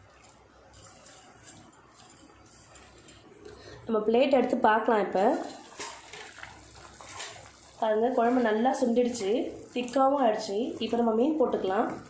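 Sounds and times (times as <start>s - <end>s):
curry bubbling in a pot: 5.1s - 12.0s.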